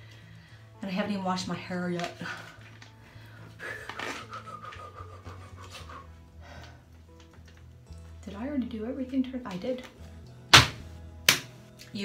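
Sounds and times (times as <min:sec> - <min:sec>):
quiet background music: 0:00.0 - 0:12.0
woman panting and sighing: 0:02.2 - 0:07.2.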